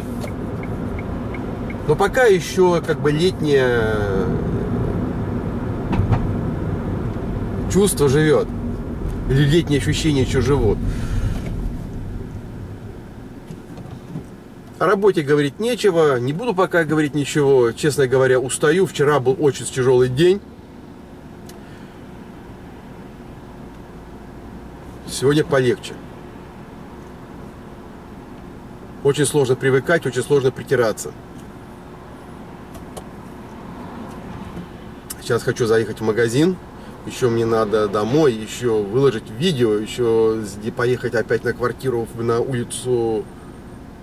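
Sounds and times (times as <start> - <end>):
car engine and tyre rumble: 0.0 - 44.0.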